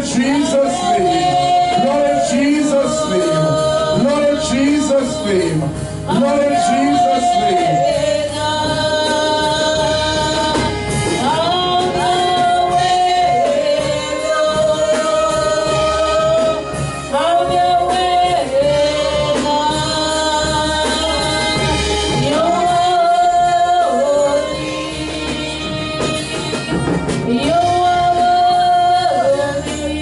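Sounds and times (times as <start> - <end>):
gospel band playing: 0.0 - 30.0
musical accompaniment: 0.0 - 30.0.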